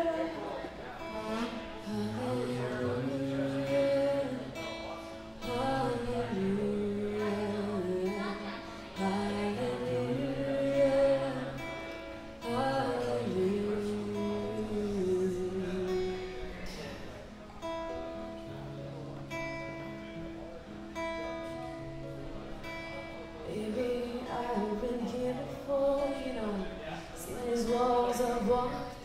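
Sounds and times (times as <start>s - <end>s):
woman singing: 0.0s - 16.4s, 23.4s - 29.0s
acoustic guitar strumming: 0.0s - 29.0s.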